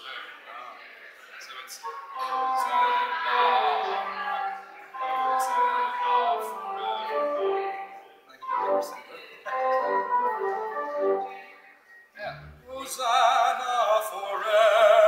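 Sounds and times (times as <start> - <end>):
pipe organ chords: 2.1 - 11.4
man singing: 2.2 - 7.8, 12.7 - 15.0.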